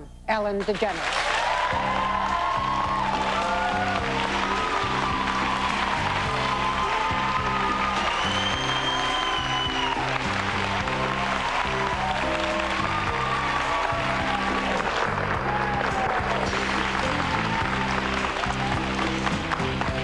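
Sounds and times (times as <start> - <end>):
audience applauding: 0.6 - 20.0
upbeat band music: 1.7 - 20.0.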